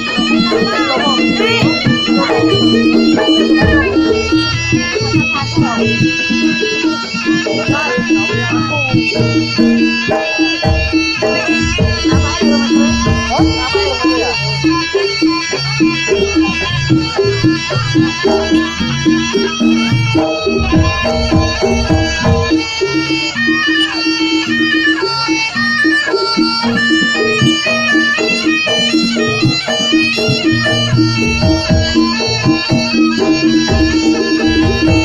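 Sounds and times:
held low tones: 0.0s - 23.8s
drum strokes: 0.0s - 35.0s
reedy wind instrument melody: 0.0s - 35.0s.

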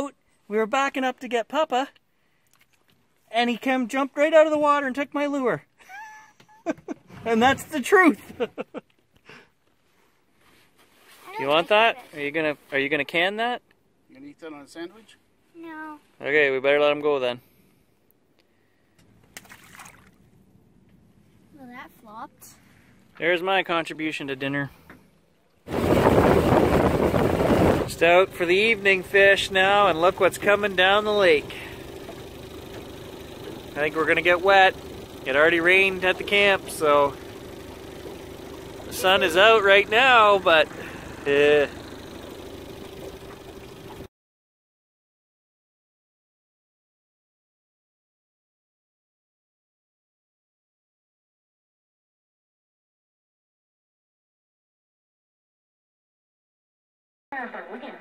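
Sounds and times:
outboard motor running: 3.6s - 8.5s, 25.7s - 44.1s
fish splashing into water: 19.3s - 20.4s.

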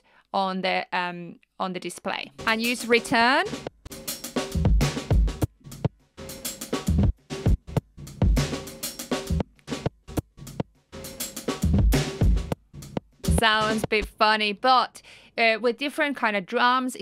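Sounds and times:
choppy gated drum loop: 2.3s - 14.2s.

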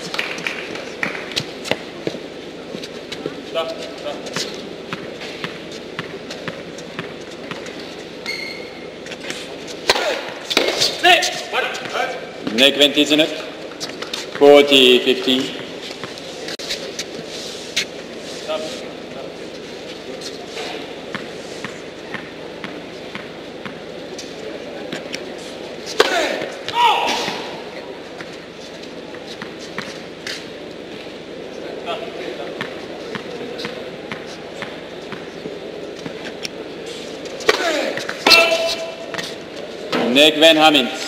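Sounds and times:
murmur of room noise: 0.0s - 41.0s
voices: 9.1s - 41.0s.

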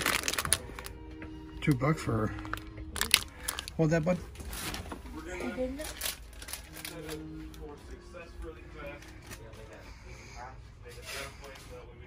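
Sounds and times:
faint background voices: 0.2s - 12.0s
rustling of items handled: 1.7s - 8.0s.

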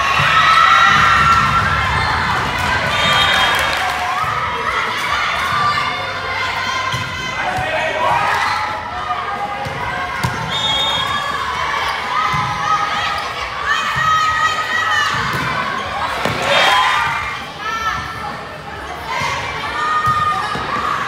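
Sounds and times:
crowd cheering: 0.0s - 17.3s
girls shouting and cheering: 0.0s - 18.2s.

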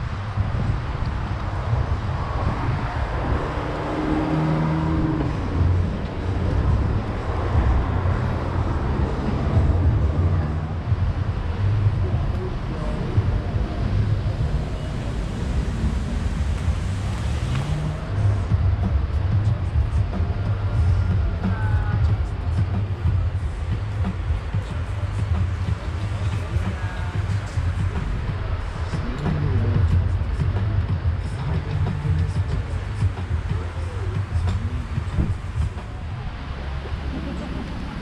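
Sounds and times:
low outdoor rumble: 0.0s - 38.0s.

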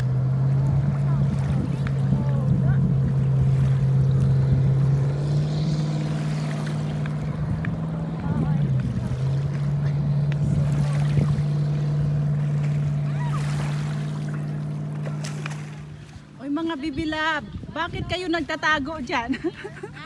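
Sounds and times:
motorboat engine running: 0.0s - 20.0s.

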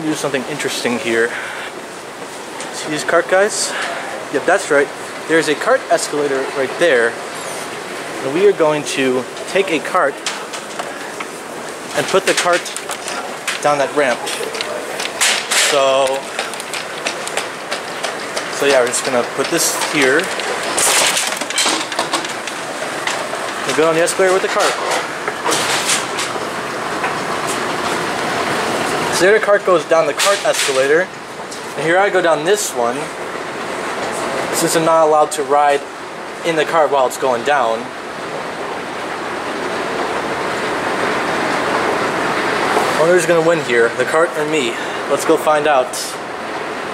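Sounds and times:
escalator running: 10.7s - 30.2s
cart wheels rattling on hard floor: 12.0s - 26.2s.

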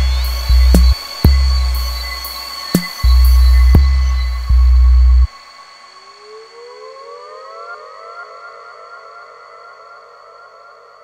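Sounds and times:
downtempo electronic music: 0.0s - 5.3s
siren-like sweeping tone: 0.0s - 11.0s
steady high whine: 0.0s - 11.0s.

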